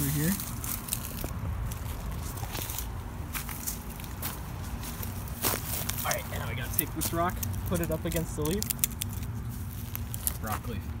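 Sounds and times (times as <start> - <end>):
footsteps crunching on leaves and gravel: 0.0 - 11.0.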